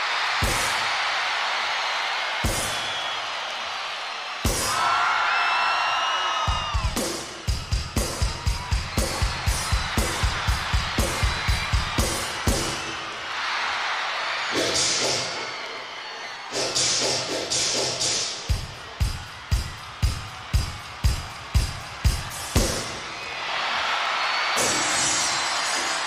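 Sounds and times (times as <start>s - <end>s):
crowd screaming: 0.0s - 26.0s.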